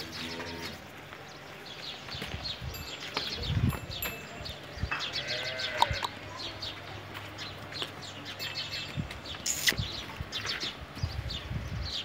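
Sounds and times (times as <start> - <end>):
farm animal bleating: 0.0 - 0.8, 5.0 - 6.2
small birds chirping: 0.0 - 12.0.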